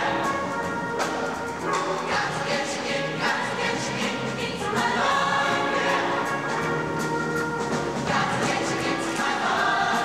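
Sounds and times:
choir singing: 0:00.0 - 0:00.9, 0:01.7 - 0:10.0.

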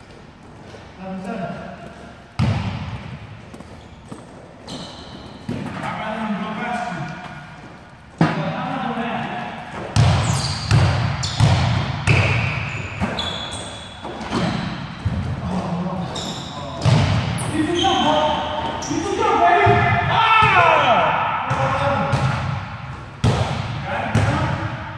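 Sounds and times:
basketball bouncing on court floor: 0:01.8 - 0:06.0, 0:09.8 - 0:15.6, 0:16.8 - 0:18.9, 0:19.6 - 0:20.8, 0:21.5 - 0:24.7.

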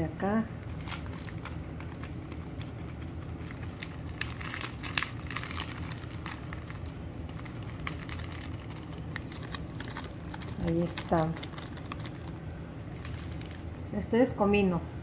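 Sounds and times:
steady low hum: 0:00.0 - 0:15.0
plastic bag crinkling: 0:00.2 - 0:14.0.

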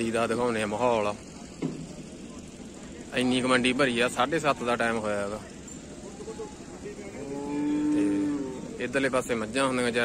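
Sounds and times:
cow mooing: 0:07.2 - 0:08.8.

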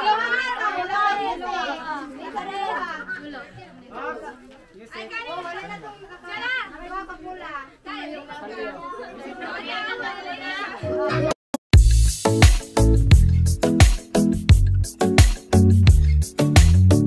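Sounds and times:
crowd chattering and calling out: 0:00.0 - 0:11.4.

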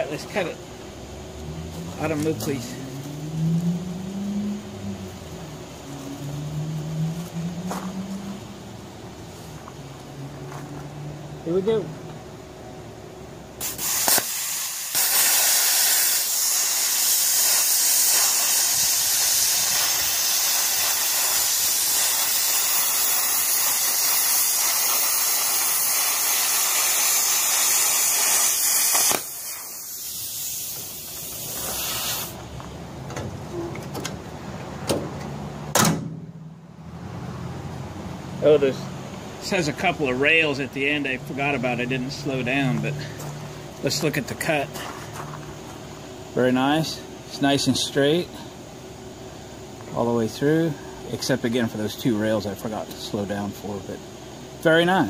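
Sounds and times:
plasma cutter hissing: 0:13.6 - 0:32.4.

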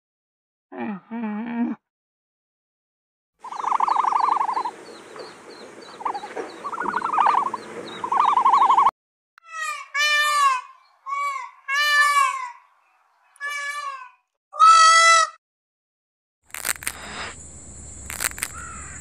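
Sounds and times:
faint trilling call: 0:03.4 - 0:08.9, 0:18.2 - 0:19.0
peafowl wailing calls: 0:03.4 - 0:08.9, 0:09.5 - 0:12.7, 0:18.5 - 0:19.0.

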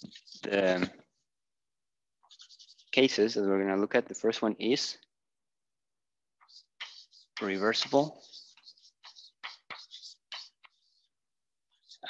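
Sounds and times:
chalk scratching on chalkboard: 0:00.0 - 0:01.3, 0:02.2 - 0:03.8, 0:06.4 - 0:12.0.

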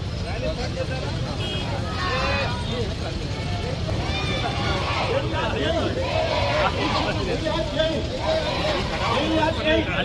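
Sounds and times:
people talking in a crowd: 0:00.0 - 0:10.0.

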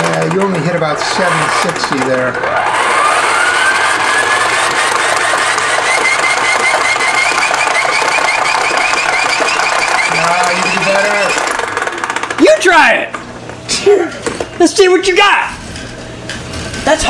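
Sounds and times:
hand-crank generator gear whine: 0:00.0 - 0:17.0.

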